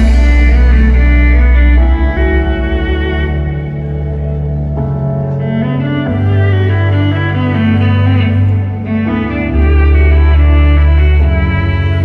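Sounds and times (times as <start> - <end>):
electric violin melody: 0.0 - 12.0
low bass notes: 0.0 - 12.0.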